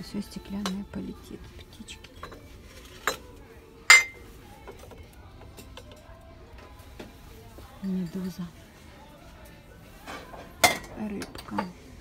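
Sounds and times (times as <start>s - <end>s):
glass figurines clinking: 3.9s - 4.2s.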